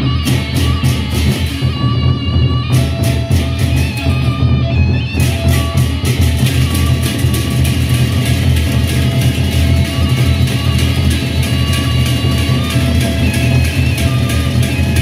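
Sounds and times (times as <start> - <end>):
barrel drums beaten fast: 0.0 - 15.0
hand cymbals crashing: 0.0 - 15.0
ringing metallic tones: 0.0 - 15.0.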